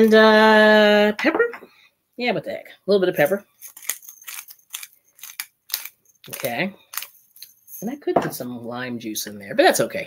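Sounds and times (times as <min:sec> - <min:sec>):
pepper grinder crunching: 0:03.2 - 0:07.9.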